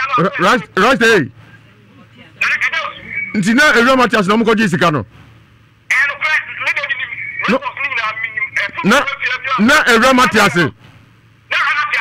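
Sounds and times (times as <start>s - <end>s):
telephone voice through speaker: 2.3s - 4.4s, 5.9s - 10.6s, 11.5s - 12.0s.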